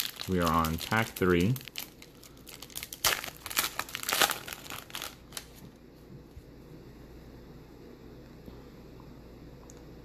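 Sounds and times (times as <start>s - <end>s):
wrapper tearing and crinkling: 0.0s - 5.6s.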